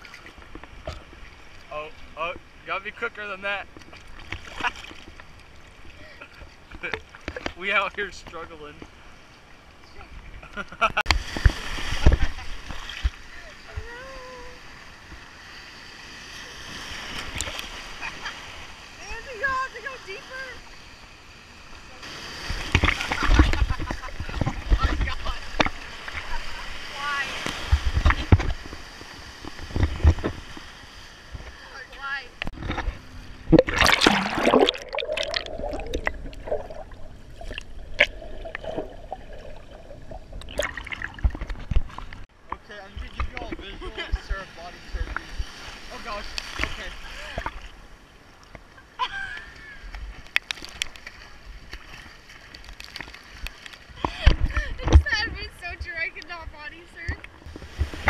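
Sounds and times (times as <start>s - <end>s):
sea waves splashing: 0.0s - 58.0s.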